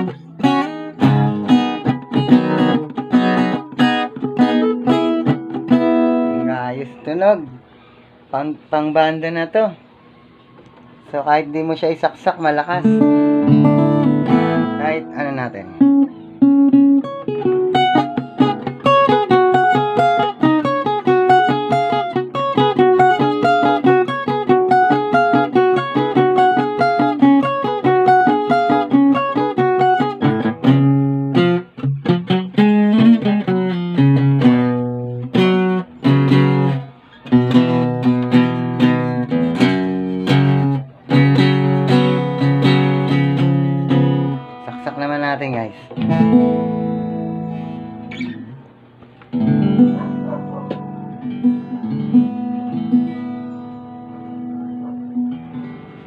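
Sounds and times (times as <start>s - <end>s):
acoustic guitar fingerpicking and strumming: 0.0s - 56.0s.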